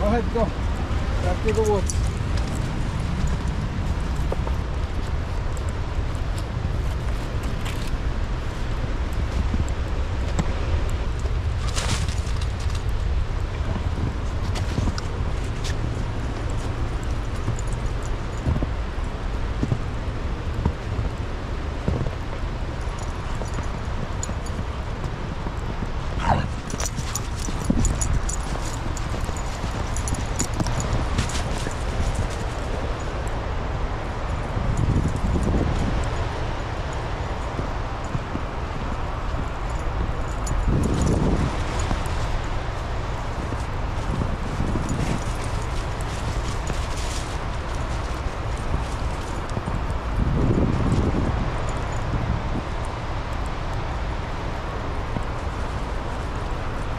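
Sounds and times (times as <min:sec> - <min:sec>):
footsteps crunching through snow: 0:11.3 - 0:33.8, 0:34.4 - 0:52.7.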